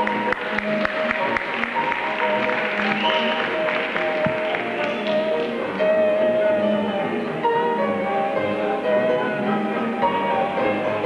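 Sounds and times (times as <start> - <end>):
audience applause: 0.0 - 5.7
clarinet solo: 0.0 - 11.0
jazz band playing: 0.0 - 11.0.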